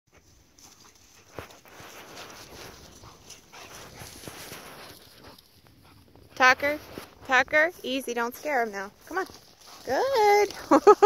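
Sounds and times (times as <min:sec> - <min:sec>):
dog paws scuffling in grass: 0:00.1 - 0:11.0.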